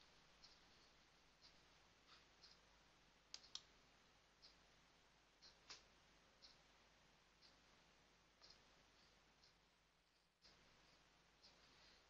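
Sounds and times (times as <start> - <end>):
computer mouse clicks: 3.3 - 3.7.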